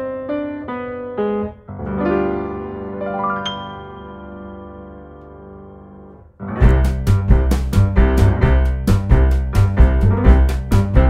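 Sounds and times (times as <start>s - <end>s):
keyboard melody: 0.0s - 11.0s.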